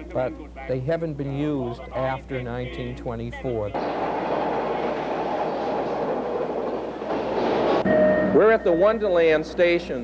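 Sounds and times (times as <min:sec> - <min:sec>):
rail car rolling on track: 0:03.8 - 0:07.8.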